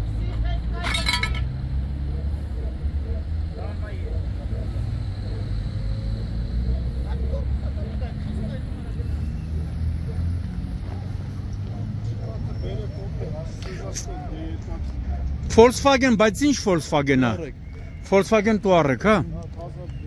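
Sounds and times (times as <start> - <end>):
vehicle engine rumbling: 0.0 - 15.5
indistinct voices talking: 0.0 - 20.0.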